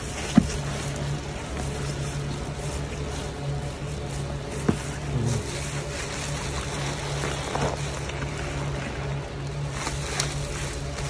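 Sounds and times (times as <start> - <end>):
sponge squelching in lather: 0.0 - 11.0
steady low hum: 0.0 - 11.0.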